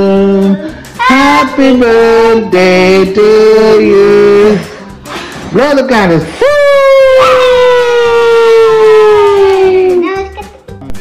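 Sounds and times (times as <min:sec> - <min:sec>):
person cheering whoo: 0:06.4 - 0:10.0.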